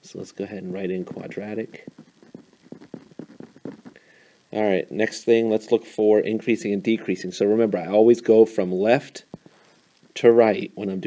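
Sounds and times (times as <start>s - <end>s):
stylus tapping on tablet: 1.0s - 4.0s.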